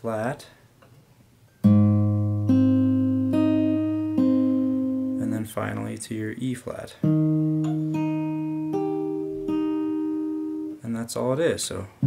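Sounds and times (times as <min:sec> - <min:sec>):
acoustic guitar fingerpicked: 0:01.5 - 0:05.7, 0:07.0 - 0:10.8.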